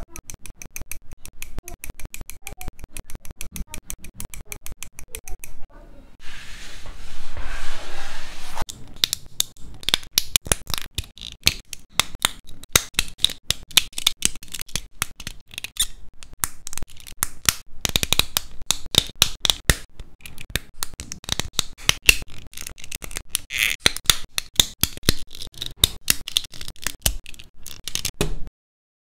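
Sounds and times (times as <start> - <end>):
hand sweeping across mat: 6.2 - 8.6
plastic parts clicking together: 8.7 - 28.3.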